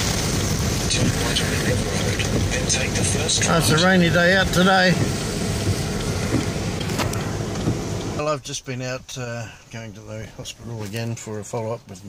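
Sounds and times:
car driving in heavy rain: 0:00.0 - 0:08.2
windscreen wipers sweeping: 0:00.0 - 0:08.2.

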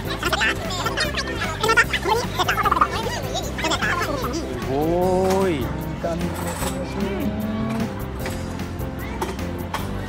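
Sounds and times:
voices talking and laughing: 0:00.0 - 0:07.9
background music: 0:00.0 - 0:10.0.

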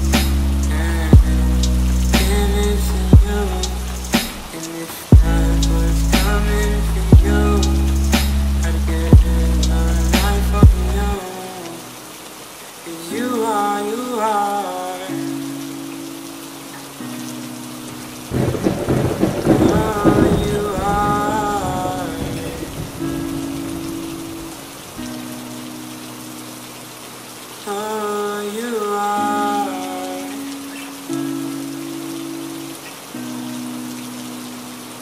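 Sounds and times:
soft synth chords: 0:00.0 - 0:04.2, 0:05.1 - 0:11.2
wordless vocal notes: 0:00.0 - 0:16.1, 0:18.3 - 0:25.2, 0:27.6 - 0:31.8
rain falling: 0:00.0 - 0:35.0
thunder rumble: 0:18.0 - 0:25.0.

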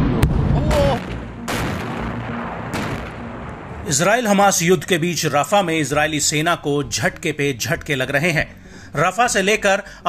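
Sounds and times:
faint bang: 0:00.0 - 0:03.9
explosion blast with rumble: 0:00.0 - 0:04.2.

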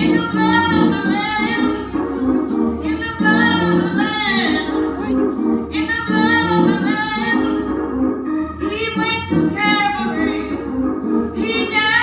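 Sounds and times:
instrumental accompaniment: 0:00.0 - 0:12.0
person singing: 0:04.9 - 0:05.5.

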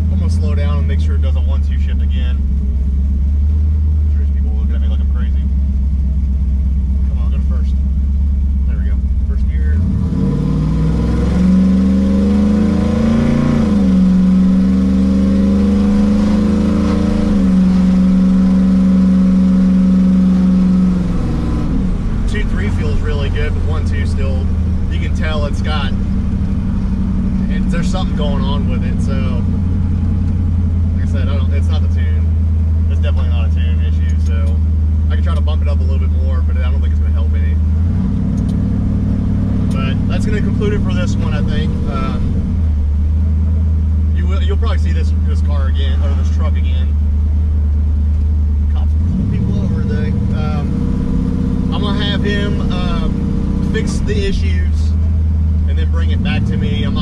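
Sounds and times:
pickup engine accelerating: 0:00.0 - 0:57.0.

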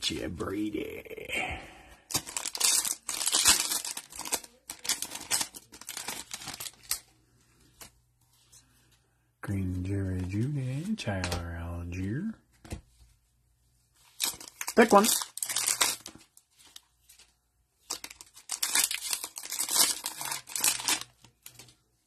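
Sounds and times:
plastic wrapper crinkling and tearing: 0:02.1 - 0:07.1, 0:14.1 - 0:21.8.

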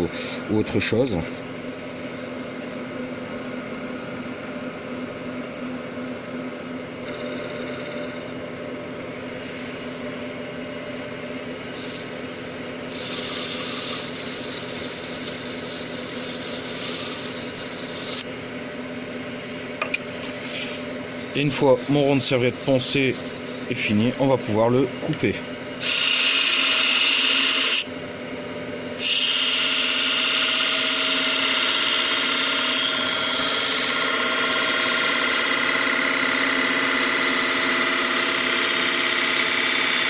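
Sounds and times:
wood lathe running: 0:07.0 - 0:08.2, 0:12.9 - 0:18.3, 0:21.2 - 0:24.1, 0:25.8 - 0:27.9, 0:29.0 - 0:40.0
tool rubbing turning wood: 0:12.9 - 0:18.3, 0:20.4 - 0:23.9.

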